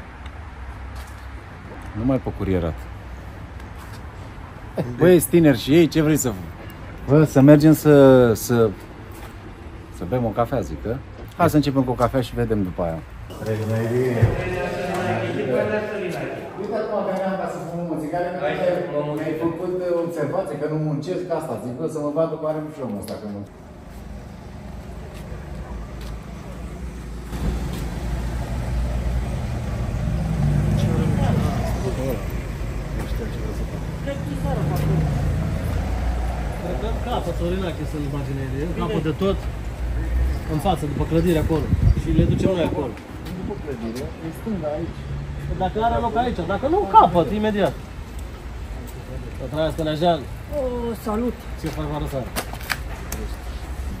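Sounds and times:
distant traffic rumble: 0.0s - 54.0s
low outdoor rumble: 23.5s - 39.9s.

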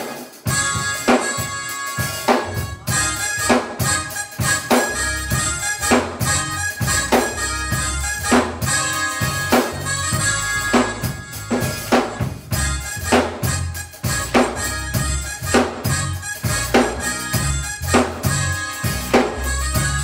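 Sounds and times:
drum kit beat: 0.0s - 20.0s
sustained organ: 0.0s - 20.0s
bass guitar: 0.5s - 20.0s.

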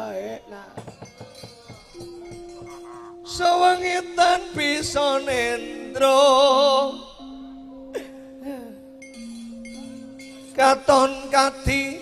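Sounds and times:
steady held gamelan note: 0.0s - 12.0s.

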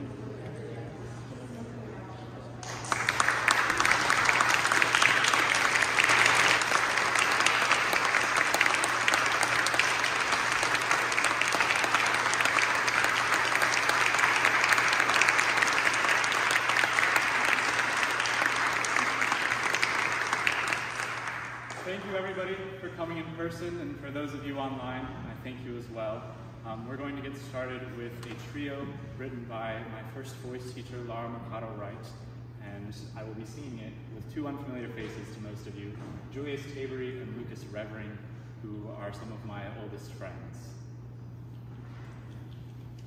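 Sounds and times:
audience applauding: 2.6s - 22.1s.

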